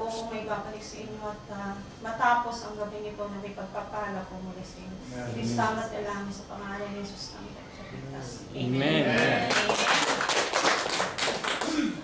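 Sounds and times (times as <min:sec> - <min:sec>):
people clapping: 0:09.1 - 0:12.0.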